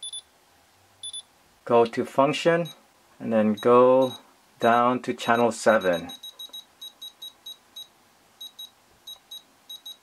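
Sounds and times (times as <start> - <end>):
short high beeps: 0.0 - 0.3, 1.0 - 1.3, 3.6 - 10.0.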